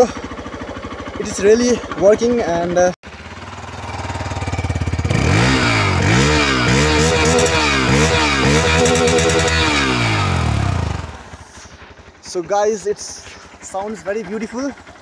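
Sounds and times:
motorcycle engine revving: 0.0 - 15.0.

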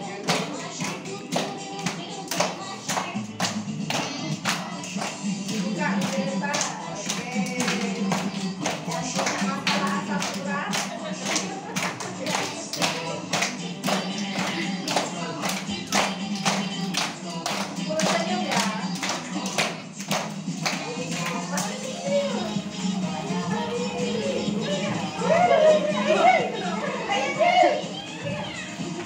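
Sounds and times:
people clapping to a beat: 0.0 - 29.0
song with singing voices: 0.0 - 29.0.

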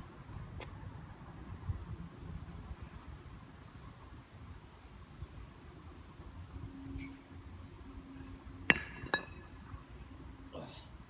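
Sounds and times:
kettlebell clinking on stone: 8.7 - 9.5.

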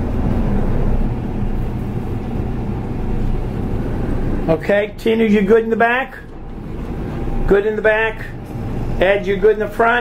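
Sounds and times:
boat diesel engines idling: 0.0 - 10.0.

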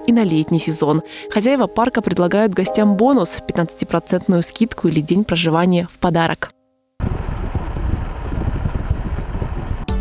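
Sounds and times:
car road and engine noise: 7.0 - 10.0.

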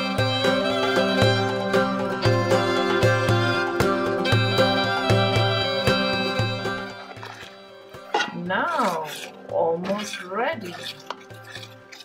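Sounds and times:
background music: 0.0 - 12.0
spoon stirring pudding in metal pot: 7.1 - 12.0.

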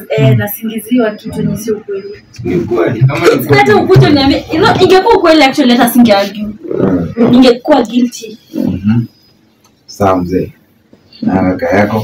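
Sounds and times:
woman talking: 0.0 - 2.2, 3.2 - 6.6, 7.2 - 8.4.

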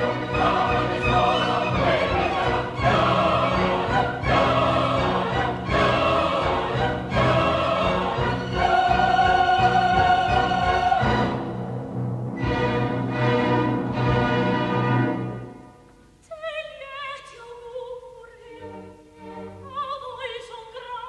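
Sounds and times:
opera singers: 0.0 - 11.6, 16.2 - 21.0
orchestra playing: 0.0 - 15.9.

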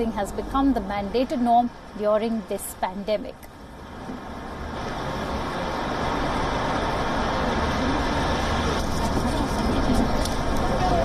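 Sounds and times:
background hubbub: 0.0 - 11.0.

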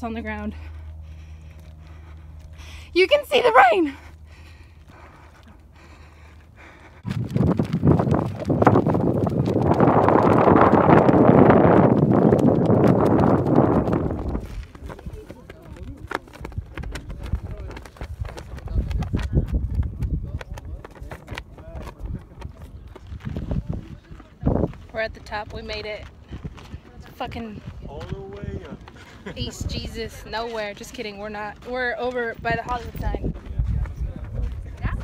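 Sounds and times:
wind gusting across microphone: 6.9 - 35.0
irregular taps and flapping: 7.0 - 23.6.

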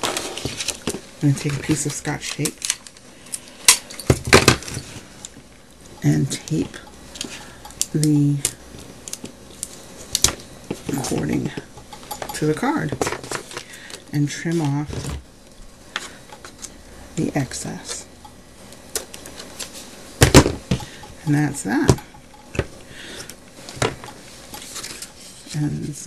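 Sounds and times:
paper rustle: 0.0 - 2.5.

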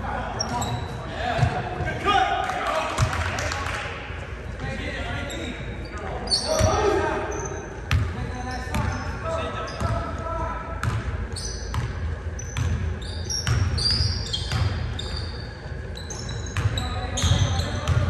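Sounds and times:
sneakers squeaking: 0.2 - 2.0, 4.4 - 18.0.

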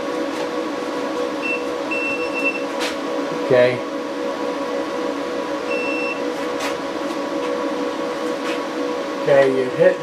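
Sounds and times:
electrical hum: 0.0 - 10.0
fan hiss: 0.0 - 10.0
thin high whine: 1.2 - 10.0.

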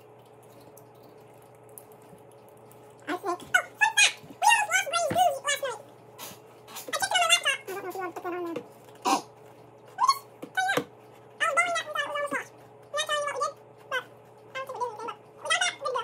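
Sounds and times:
high-pitched wordless vocal sounds: 3.0 - 5.8.

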